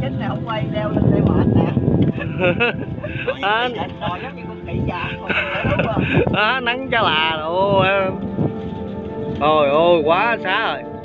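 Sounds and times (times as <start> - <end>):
indistinct talking voices: 0.0 - 8.5
background music: 0.0 - 11.0.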